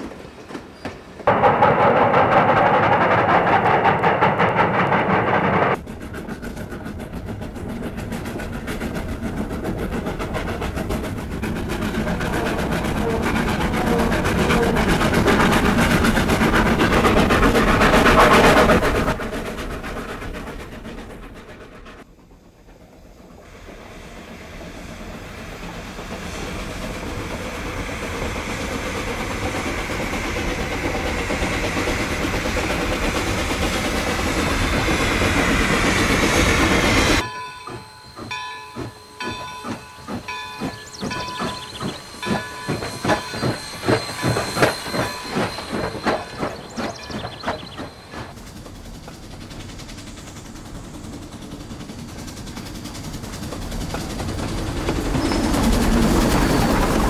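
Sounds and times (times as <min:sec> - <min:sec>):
quick regular train beats: 0:00.0 - 0:57.0
train passing: 0:00.0 - 0:57.0.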